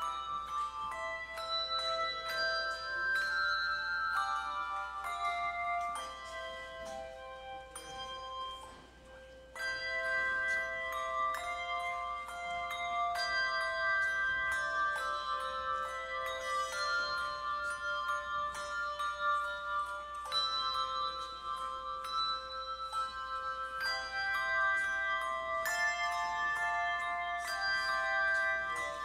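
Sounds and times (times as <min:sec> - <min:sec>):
handbell choir playing a hymn: 0:00.0 - 0:29.0.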